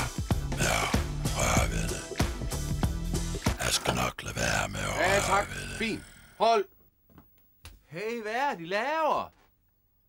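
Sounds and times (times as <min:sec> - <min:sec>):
man's wordless exclamations: 0:04.9 - 0:06.7.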